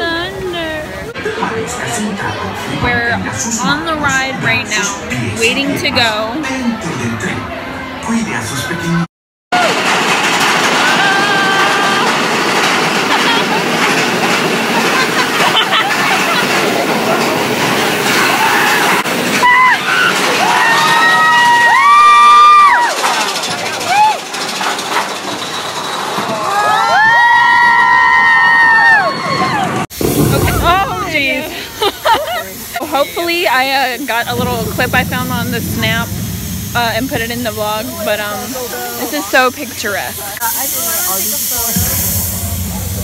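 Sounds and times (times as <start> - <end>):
roller coaster train rushing and rattling: 0.0 - 9.0, 9.6 - 43.0.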